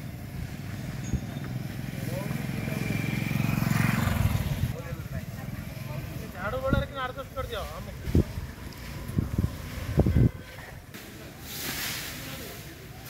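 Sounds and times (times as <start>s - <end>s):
motorbike passing: 0.0s - 11.3s.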